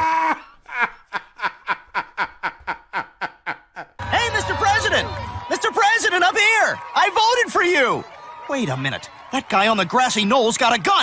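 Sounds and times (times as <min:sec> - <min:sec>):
man laughing breathily: 0:00.0 - 0:04.0.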